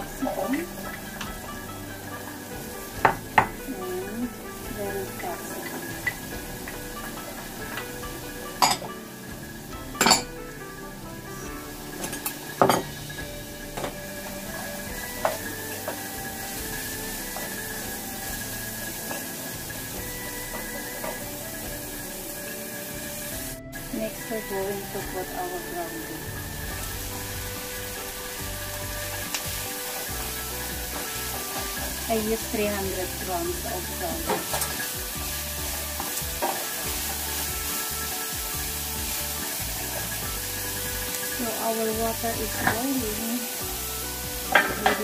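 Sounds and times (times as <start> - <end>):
background music: 0.0 - 45.0
faint sizzle: 0.0 - 45.0
wooden spoon knocking on pan: 2.8 - 3.7, 44.4 - 45.0.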